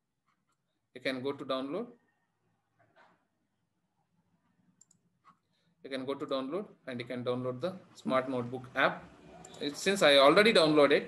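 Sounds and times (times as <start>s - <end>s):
man speaking: 1.0s - 1.9s, 5.9s - 11.0s
computer mouse clicks: 4.8s - 5.4s, 9.4s - 9.7s.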